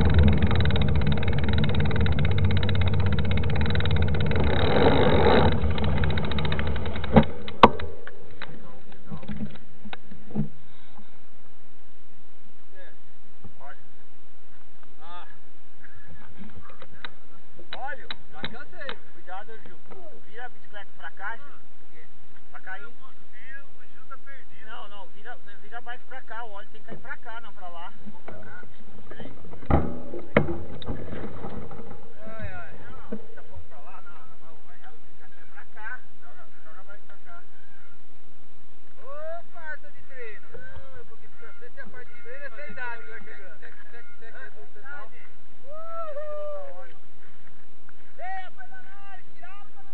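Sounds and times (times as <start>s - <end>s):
faint road noise: 0.0s - 49.9s.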